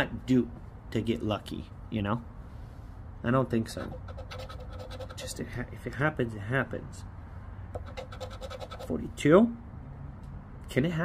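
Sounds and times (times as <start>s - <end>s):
scratcher scraping lottery ticket: 3.8s - 5.4s, 7.8s - 9.0s.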